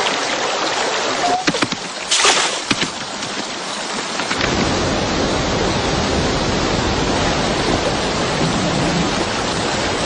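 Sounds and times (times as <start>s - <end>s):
stream water rushing over rocks: 0.0s - 10.0s.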